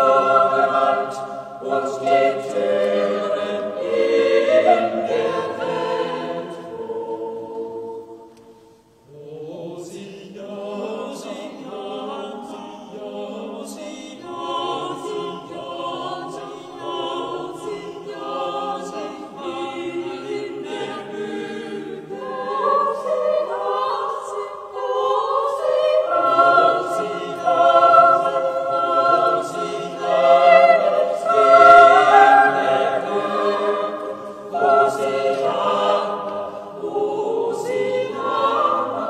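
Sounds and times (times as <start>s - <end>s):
choir singing unaccompanied: 0.0s - 39.0s.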